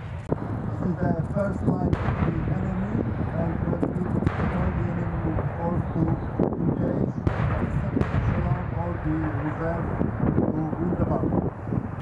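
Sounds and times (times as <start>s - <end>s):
tanks rumbling: 0.0s - 12.0s
distant gunfire cracks: 1.9s - 2.8s, 3.8s - 5.8s, 7.2s - 10.4s.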